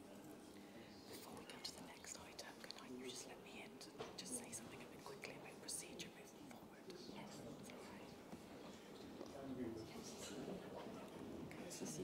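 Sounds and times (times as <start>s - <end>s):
whispered voices: 0.0s - 12.0s.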